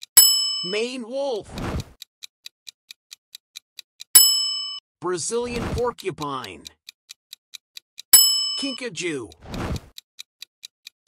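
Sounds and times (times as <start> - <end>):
clock-like ticking: 0.0 - 11.0
bright bell ding: 0.2 - 0.9, 4.2 - 4.8, 8.2 - 8.9.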